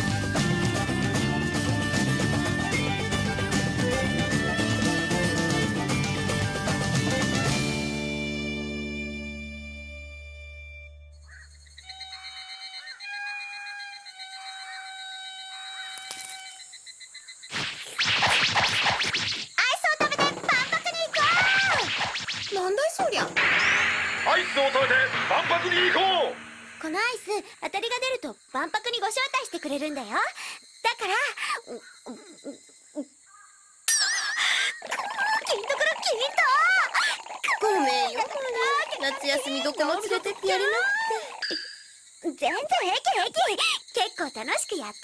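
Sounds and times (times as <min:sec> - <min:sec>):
loud noisy sound: 0:23.3 - 0:26.8.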